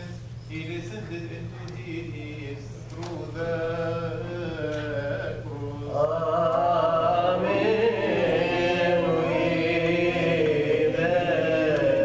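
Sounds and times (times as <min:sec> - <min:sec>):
voices singing liturgical chant: 0:00.7 - 0:12.0.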